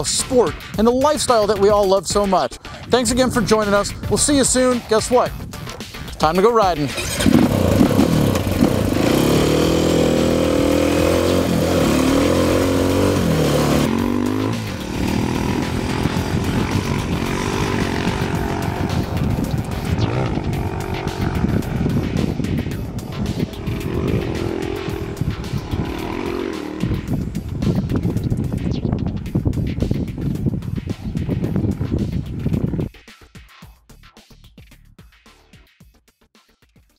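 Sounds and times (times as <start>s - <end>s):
dirt bike engine revving: 6.2s - 28.3s
music with steady beat: 9.0s - 36.9s.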